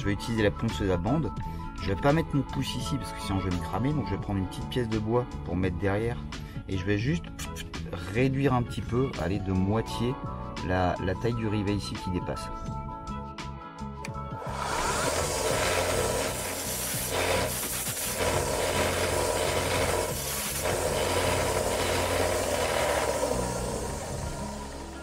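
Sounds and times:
belt sander grinding metal: 14.4 - 25.0.

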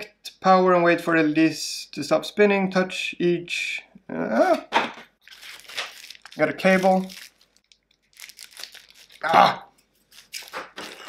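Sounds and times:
plastic packaging crinkling: 5.2 - 9.3, 10.0 - 11.0.

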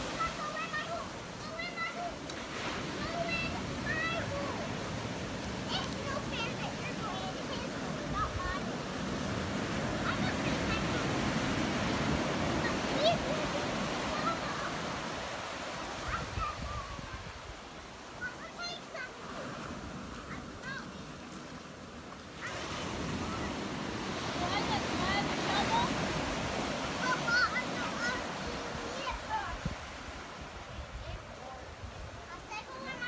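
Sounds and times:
children calling out: 0.0 - 17.4, 22.3 - 30.0, 32.4 - 33.0
ocean surf washing on beach: 0.0 - 33.0.

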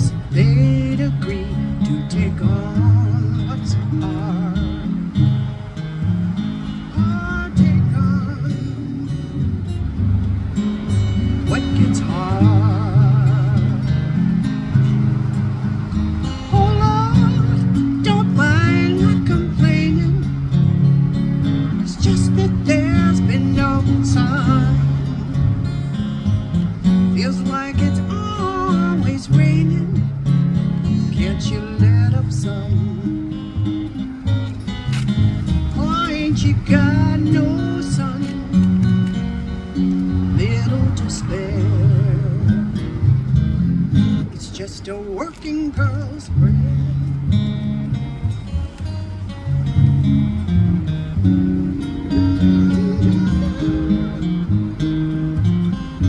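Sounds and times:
acoustic guitars playing: 0.0 - 56.0
upright double bass walking: 0.0 - 56.0
wavering sliding melody: 48.3 - 56.0.

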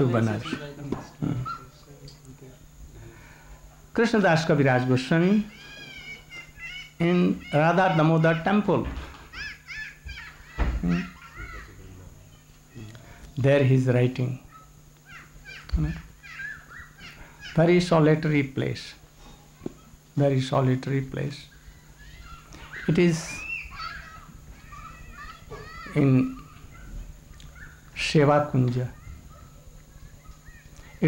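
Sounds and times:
faint room noise: 0.0 - 31.0
bird chirping: 16.3 - 17.3, 21.4 - 24.1, 26.8 - 28.0.

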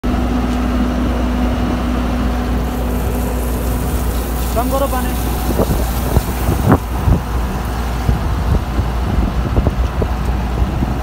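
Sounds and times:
machine engine running: 0.0 - 9.8.

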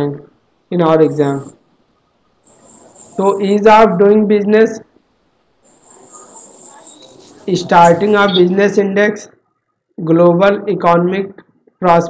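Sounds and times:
faint high-pitched tone: 0.9 - 4.7, 5.3 - 8.9.

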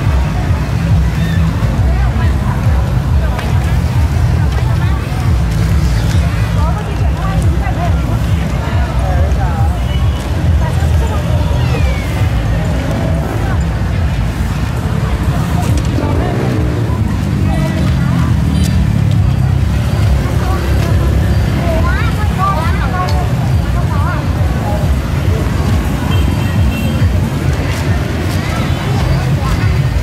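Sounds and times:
crowd chatter: 0.0 - 30.0
heavy low rumble: 0.0 - 30.0
motorbikes passing: 0.0 - 30.0.

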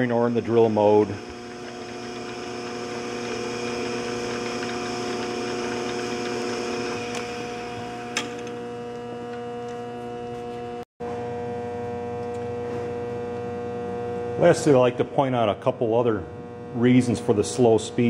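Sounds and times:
motor humming: 0.0 - 10.8.

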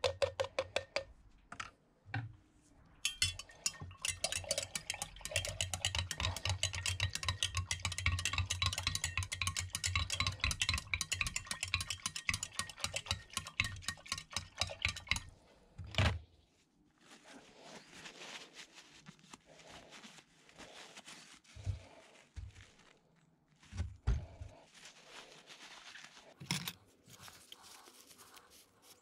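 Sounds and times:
metal rod clinking in glass jar: 3.0 - 15.3.

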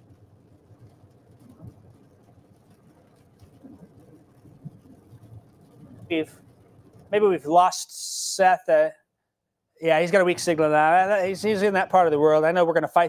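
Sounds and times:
faint low background noise: 0.0 - 13.0.

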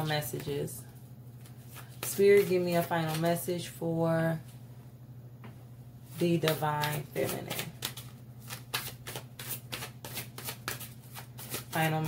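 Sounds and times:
cards being shuffled: 1.4 - 3.3, 6.4 - 12.0.

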